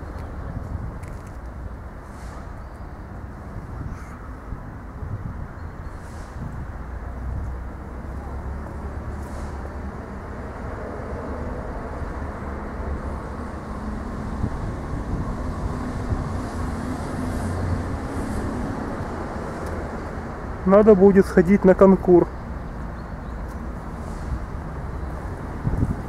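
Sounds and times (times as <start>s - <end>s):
road traffic rumble: 0.0s - 26.0s.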